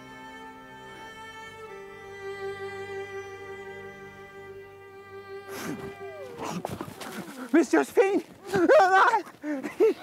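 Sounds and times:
bowed string note: 0.0 - 6.6.

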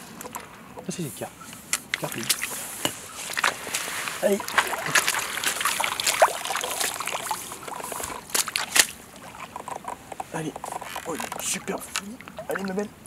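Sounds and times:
fish splashing at water surface: 1.9 - 2.7, 3.3 - 12.9.

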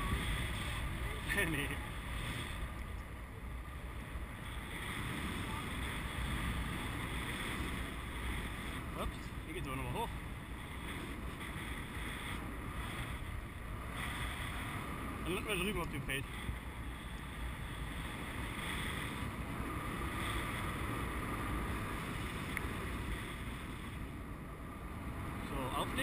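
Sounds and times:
wind noise on microphone: 0.0 - 26.0.

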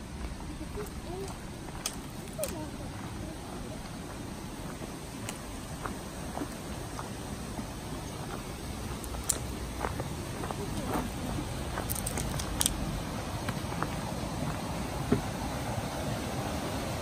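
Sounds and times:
creek rushing: 0.0 - 17.0.

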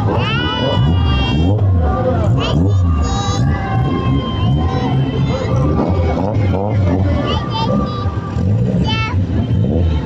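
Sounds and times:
race car engines at low speed: 0.0 - 10.0.

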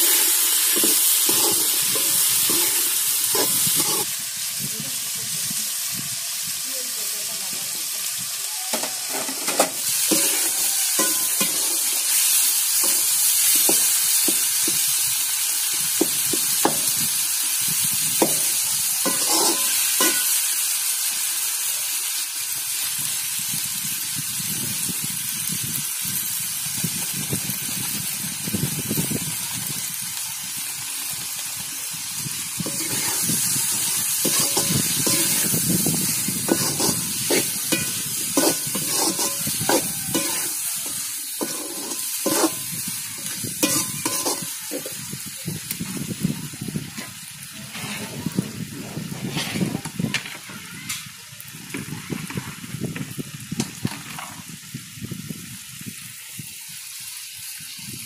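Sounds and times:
metal spoon scraping pot: 0.0 - 4.0, 9.1 - 12.2, 19.1 - 20.4, 32.6 - 33.3, 34.2 - 35.6, 36.5 - 42.6, 43.6 - 44.6
vegetables sizzling in oil: 0.0 - 58.0.

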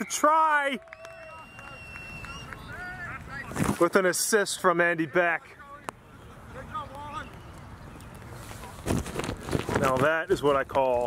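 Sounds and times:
long whistle blast: 1.0 - 2.6.

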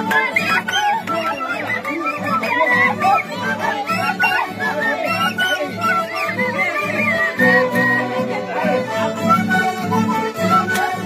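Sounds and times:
mandolin accompaniment: 0.0 - 11.0
violin melody: 0.0 - 11.0
end-blown flute melody: 9.0 - 11.0.

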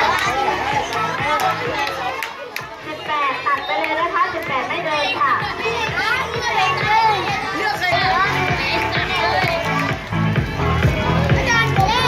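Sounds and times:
children chattering and calling out: 0.0 - 12.0
music playing: 0.0 - 12.0.

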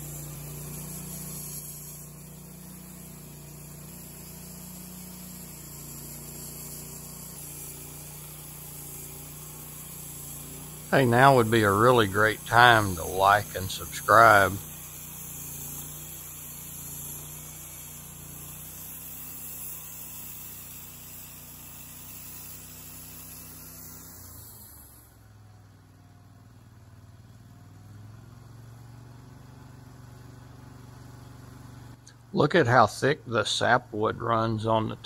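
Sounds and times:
band sawmill running: 0.0 - 25.5.

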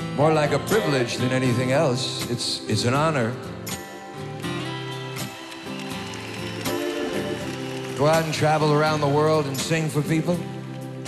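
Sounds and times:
band playing soft held chords: 0.0 - 11.0.

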